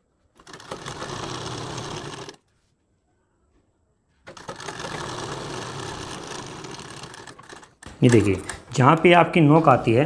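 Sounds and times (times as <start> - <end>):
sewing machine stitching: 0.4 - 2.4, 4.2 - 9.0.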